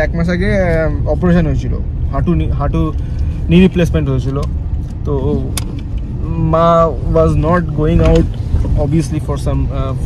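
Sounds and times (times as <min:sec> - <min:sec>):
low car engine rumble: 0:00.0 - 0:10.0
voices in a car: 0:00.0 - 0:10.0.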